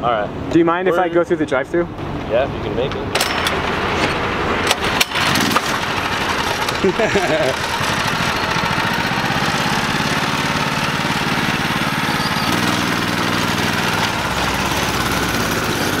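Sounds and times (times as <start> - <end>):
go-kart engine running: 3.2 - 16.0.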